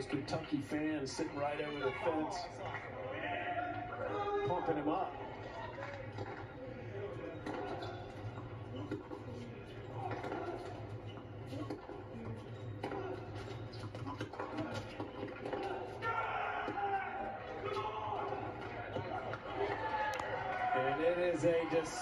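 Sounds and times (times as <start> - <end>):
crowd chatter through tv speaker: 0.0 - 22.0.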